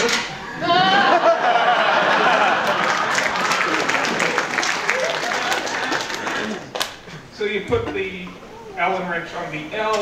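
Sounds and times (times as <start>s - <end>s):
audience laughing and clapping: 0.5s - 7.0s
man speaking: 7.3s - 10.0s.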